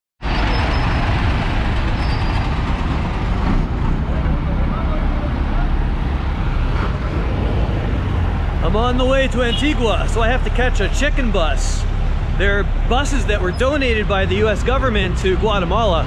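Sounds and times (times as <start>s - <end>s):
diesel bus engine running: 0.2s - 16.0s
street traffic: 0.2s - 16.0s
faint voices: 4.0s - 6.0s.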